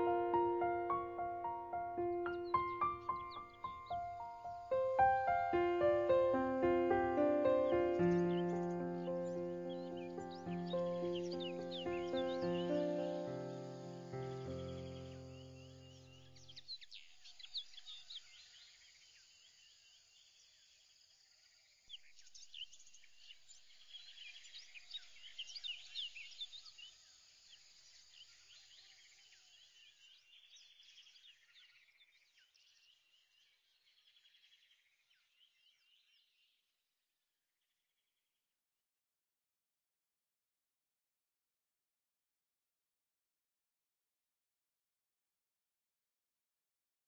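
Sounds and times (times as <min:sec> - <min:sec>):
musical chord: 0:00.0 - 0:15.2
birds chirping and whistling: 0:02.2 - 0:06.2, 0:07.2 - 0:13.2.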